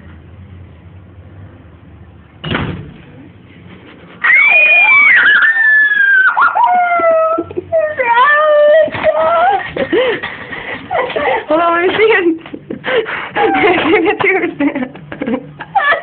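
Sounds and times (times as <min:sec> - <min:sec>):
door slamming: 0:02.4 - 0:03.0
girl wailing: 0:04.2 - 0:09.7.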